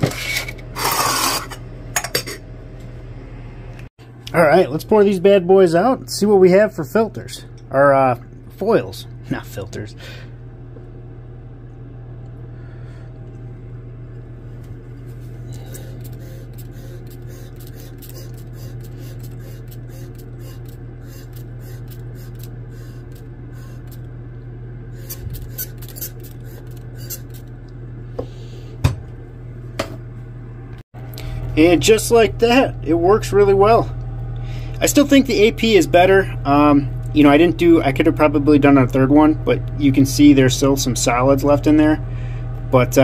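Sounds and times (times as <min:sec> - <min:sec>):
low pump hum: 0:04.8 - 0:43.0.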